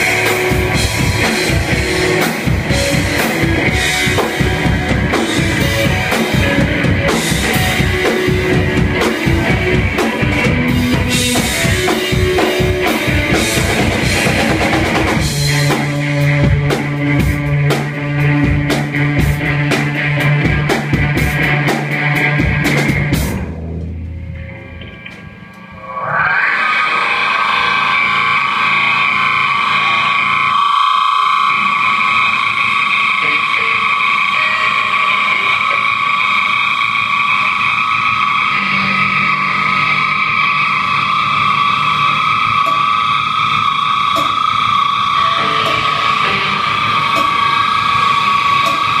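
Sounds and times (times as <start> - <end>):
electric guitar feedback drone: 0.0 - 49.0.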